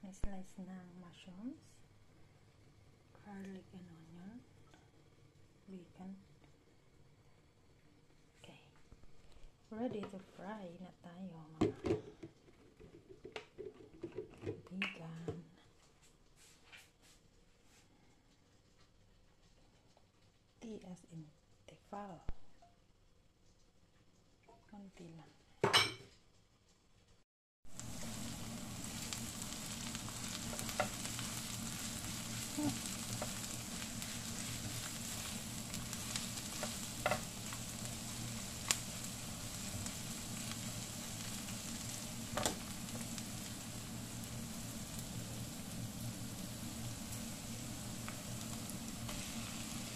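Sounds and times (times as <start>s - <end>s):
onions sizzling in oil: 27.6s - 49.9s.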